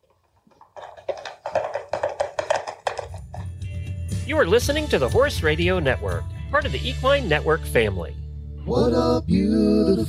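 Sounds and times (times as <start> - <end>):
rapid sharp percussive knocks: 0.8 - 3.7.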